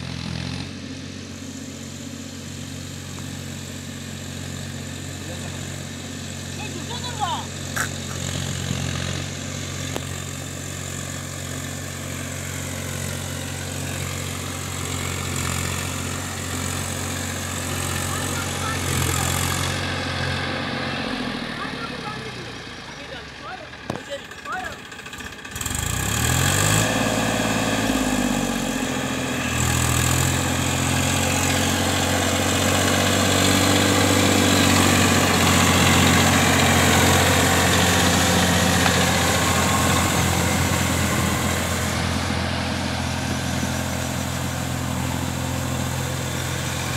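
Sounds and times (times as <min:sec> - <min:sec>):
tractor diesel engine under load: 0:00.0 - 0:46.9.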